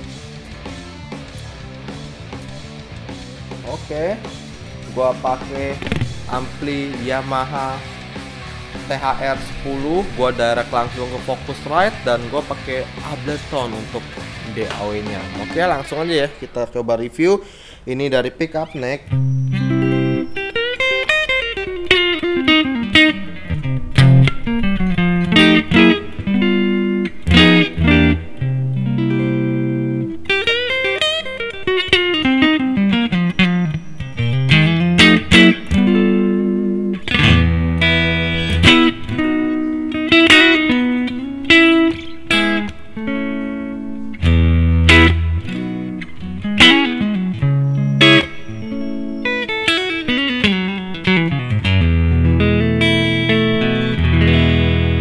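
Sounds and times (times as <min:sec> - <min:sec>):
electric guitar playing: 0:00.0 - 0:16.8, 0:18.6 - 0:55.0.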